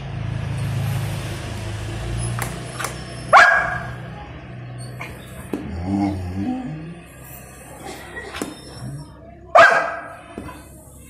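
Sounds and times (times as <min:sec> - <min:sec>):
puppy barking: 0:03.3 - 0:04.0, 0:09.6 - 0:10.3.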